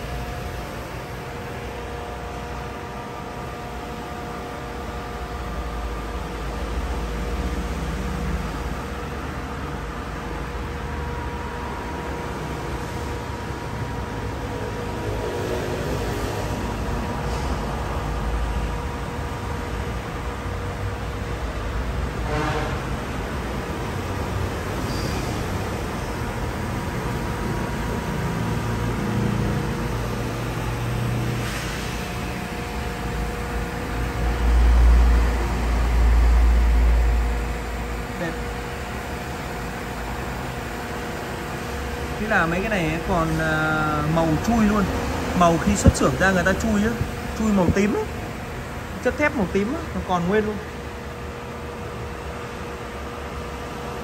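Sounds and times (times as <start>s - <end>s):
mechanical hum: 0.0s - 54.0s.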